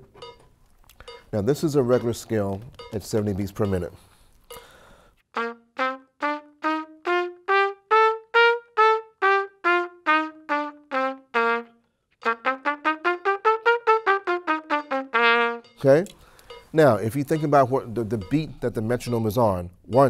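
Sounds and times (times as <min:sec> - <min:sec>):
trumpet playing a scale: 0:05.3 - 0:15.8.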